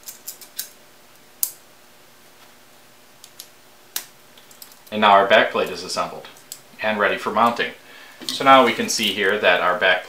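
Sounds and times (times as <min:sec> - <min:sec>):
small parts clicking: 0:00.0 - 0:00.8, 0:03.2 - 0:05.0.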